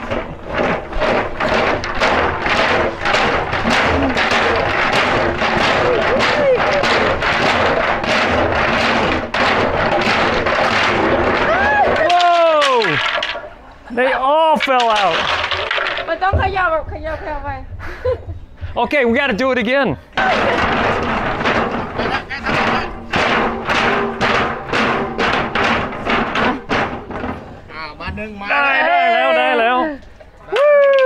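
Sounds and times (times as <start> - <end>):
sticks rattling in metal drum: 0.0 - 13.6, 14.4 - 16.8, 20.2 - 27.7
sticks spilling out: 0.0 - 13.6, 14.5 - 16.2.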